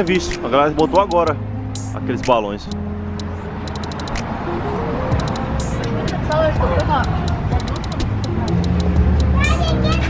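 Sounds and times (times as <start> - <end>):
traffic hum: 0.0 - 10.0
short high clicks: 3.2 - 4.4.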